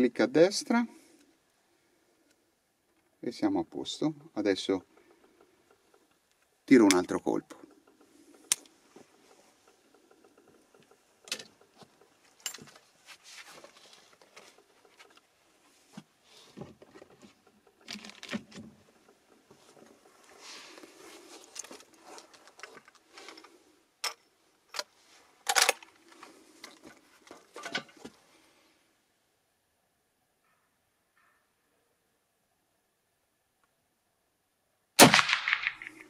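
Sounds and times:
rifle handling clicks and knocks: 0:04.6 - 0:28.2, 0:35.1 - 0:36.0.

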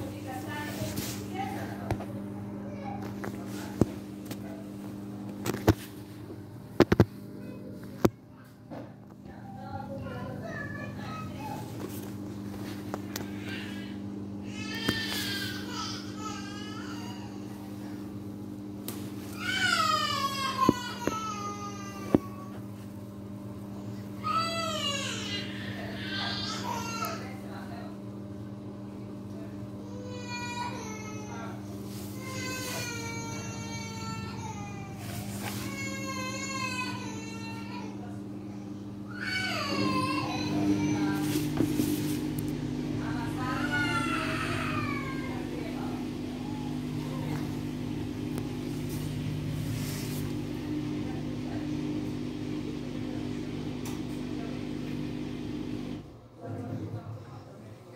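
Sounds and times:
washing machine spinning hum: 0:00.0 - 0:57.9.

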